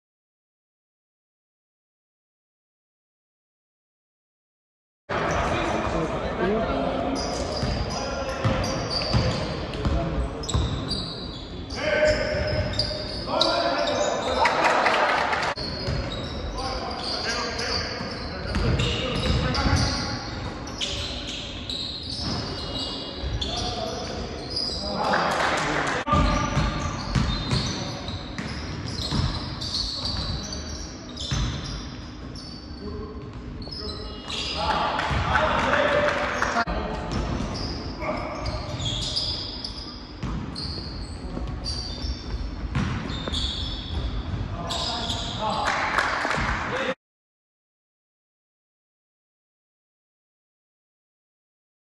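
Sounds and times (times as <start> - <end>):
shoes squeaking: 7.1 - 9.6, 10.4 - 14.7, 26.6 - 32.8, 37.2 - 45.6
basketball bouncing: 26.1 - 27.8, 28.4 - 29.4, 41.3 - 43.3.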